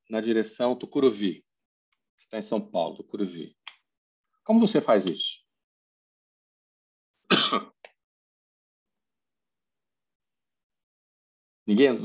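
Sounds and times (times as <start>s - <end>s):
man clearing throat: 7.3s - 7.8s.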